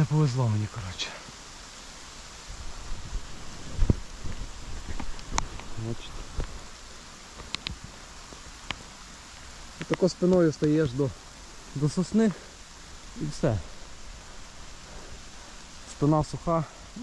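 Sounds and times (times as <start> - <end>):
rain hissing on forest: 0.0 - 17.0
rustles: 0.0 - 17.0.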